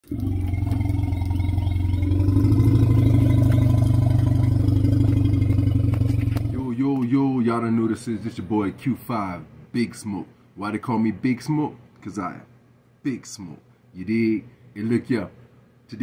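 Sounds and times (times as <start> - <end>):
deep pulsing engine-like rumble: 0.1 - 6.6
man talking: 6.6 - 16.0.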